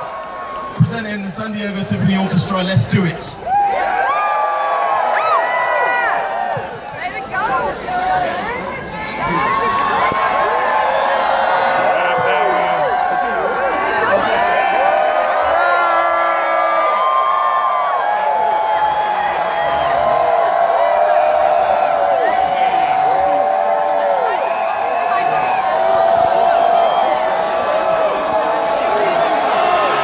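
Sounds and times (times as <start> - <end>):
crowd cheering and whooping: 0.0 - 0.9, 3.4 - 30.0.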